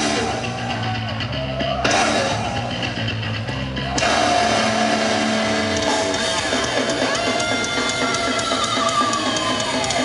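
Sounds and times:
distorted electric guitar chord: 0:04.0 - 0:06.5.

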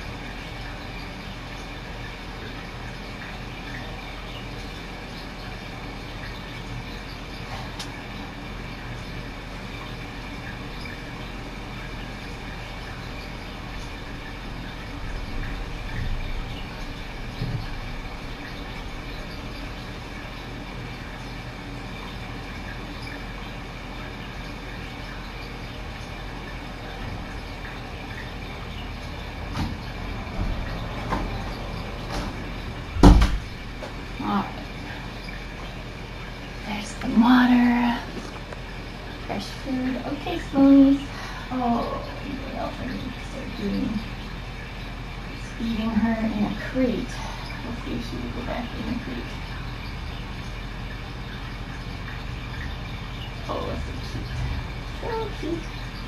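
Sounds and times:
room noise hum and hiss: 0:00.0 - 0:56.0.

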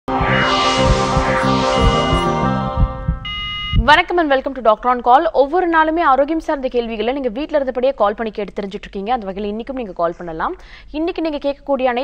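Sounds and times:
tv theme music: 0:00.0 - 0:03.6
low heartbeat-like thumps: 0:00.0 - 0:04.0
short electronic beep: 0:00.1 - 0:03.9.

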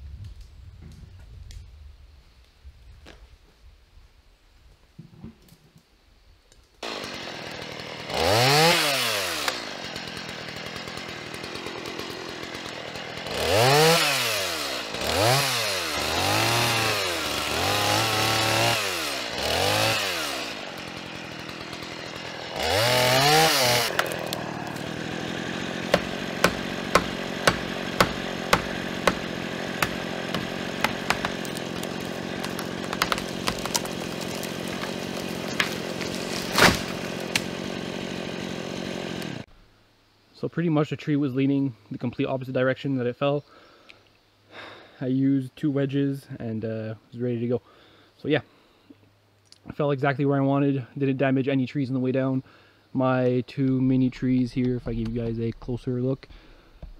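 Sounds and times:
chainsaw revving and cutting: 0:06.8 - 0:39.5
wedges hammered into wood: 0:25.9 - 0:33.8.

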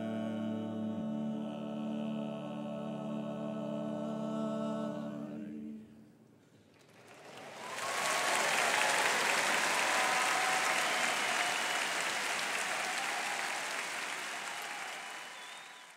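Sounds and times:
large audience applauding: 0:06.7 - 0:15.9.

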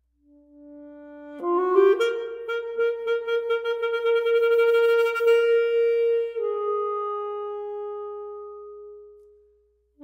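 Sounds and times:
saxophone long note: 0:00.5 - 0:09.2.

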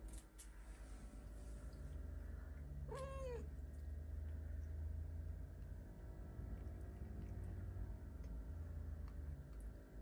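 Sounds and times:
steady low hum: 0:00.0 - 0:10.0
cat meowing: 0:02.9 - 0:03.5.

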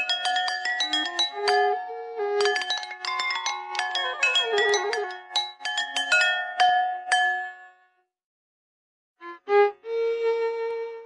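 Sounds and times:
porcelain bowls struck with sticks: 0:00.0 - 0:07.7.

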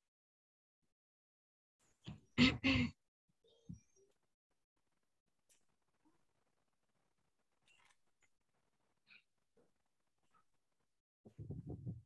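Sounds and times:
woman laughing: 0:02.4 - 0:02.9.

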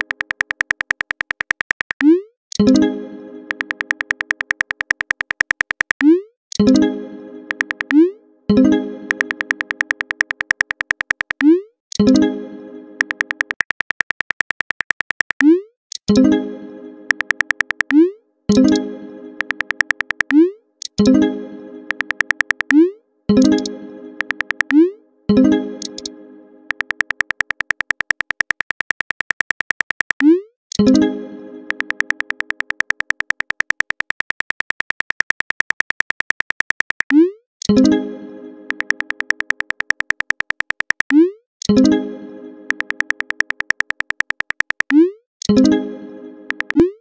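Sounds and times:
phone keyboard typing clicks: 0:00.0 - 0:02.6, 0:03.5 - 0:06.6, 0:07.5 - 0:08.0, 0:09.1 - 0:12.1, 0:13.0 - 0:16.1, 0:17.1 - 0:18.0, 0:19.4 - 0:21.0, 0:21.9 - 0:22.8, 0:23.4 - 0:24.8, 0:25.8 - 0:26.1, 0:26.7 - 0:30.4, 0:31.7 - 0:37.8, 0:38.7 - 0:41.8, 0:42.7 - 0:45.6, 0:46.5 - 0:46.8.

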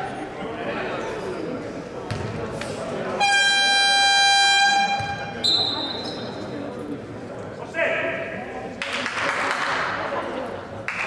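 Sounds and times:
crowd chatter: 0:00.0 - 0:11.0
referee's whistle blast: 0:03.2 - 0:06.2.

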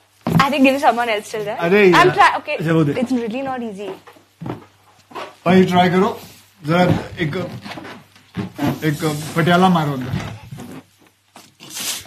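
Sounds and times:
balloon rubbing: 0:06.1 - 0:12.0
helium hissing from balloon: 0:08.6 - 0:10.1, 0:11.6 - 0:12.0.

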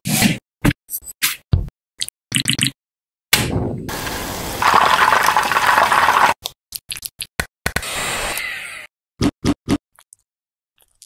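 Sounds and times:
chicken deep-frying in hot oil: 0:03.9 - 0:06.4.

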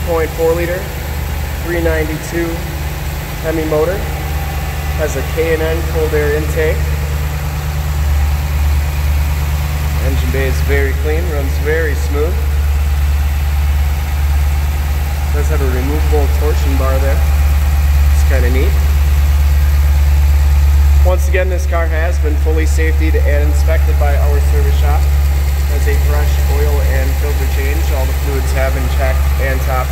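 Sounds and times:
car engine idling: 0:00.0 - 0:29.9.

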